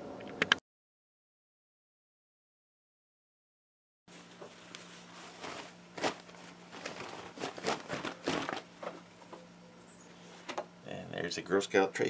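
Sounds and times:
fabric rustling and flapping: 0:04.1 - 0:09.1.

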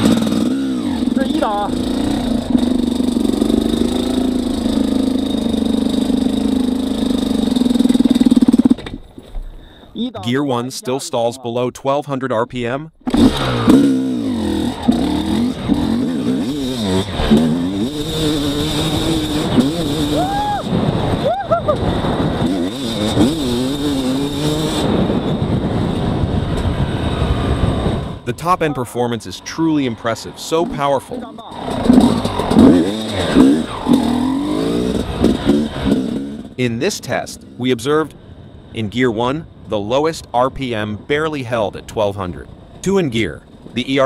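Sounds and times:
dirt bike engine accelerating: 0:00.0 - 0:09.2, 0:13.0 - 0:38.8.

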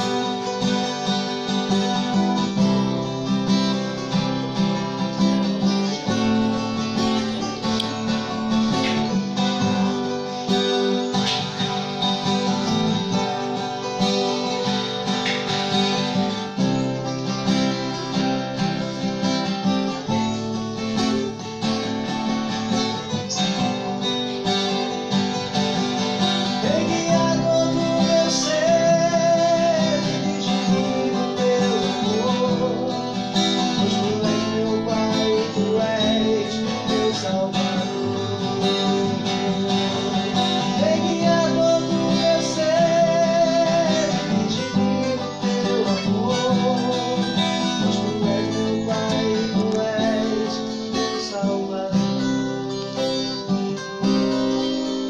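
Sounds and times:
acoustic guitars playing: 0:00.0 - 0:55.0
man singing: 0:25.4 - 0:53.5.

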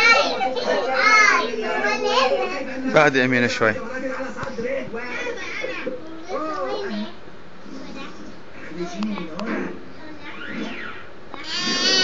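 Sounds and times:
high-pitched voices talking: 0:10.1 - 0:12.0.

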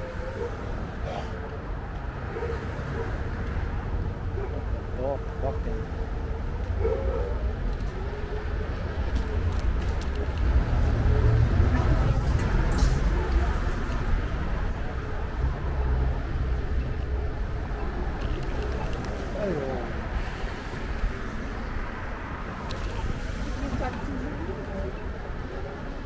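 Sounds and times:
street traffic passing: 0:00.0 - 0:26.0.

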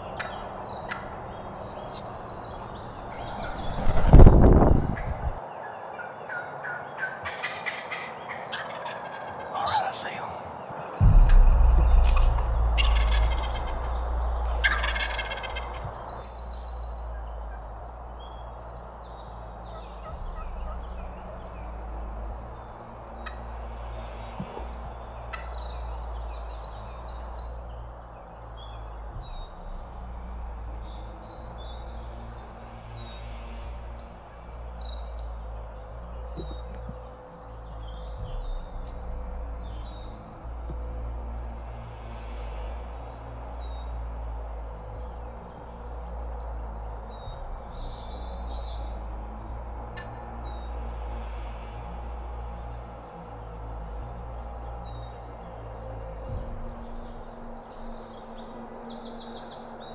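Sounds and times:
songbirds chirping: 0:00.0 - 0:59.9
steady low rumble: 0:02.4 - 0:05.4, 0:11.0 - 0:59.2
turkey gobbling: 0:06.3 - 0:09.9, 0:14.6 - 0:15.6.

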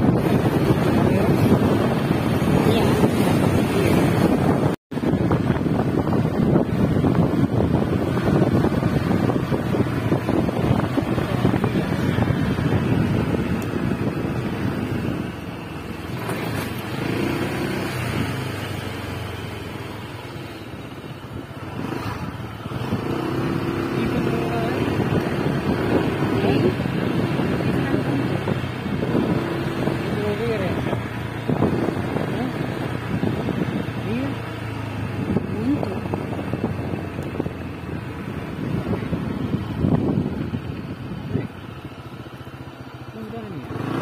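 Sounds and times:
wind on microphone: 0:00.0 - 0:42.3
small scooter engine running: 0:00.0 - 0:44.0.

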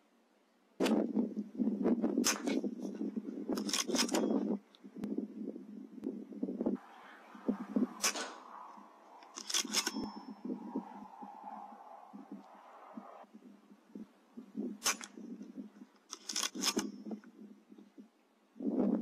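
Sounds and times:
air rifle shots: 0:02.2 - 0:02.6, 0:07.9 - 0:08.5, 0:14.8 - 0:15.2
low rushing noise: 0:06.8 - 0:15.8
metallic ring: 0:09.4 - 0:11.0.

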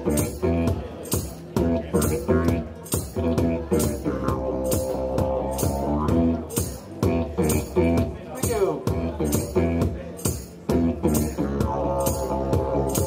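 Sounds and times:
didgeridoo drone: 0:00.0 - 0:08.2, 0:08.9 - 0:09.9, 0:10.7 - 0:13.0
percussive beat: 0:00.0 - 0:13.0.

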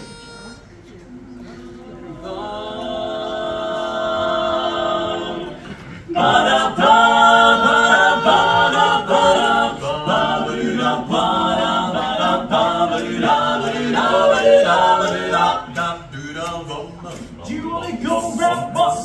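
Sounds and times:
male quartet singing a cappella: 0:02.2 - 0:19.0.

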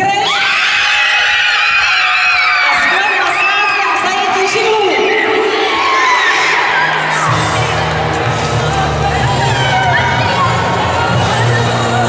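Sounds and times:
girls screaming with excitement: 0:00.0 - 0:04.2.

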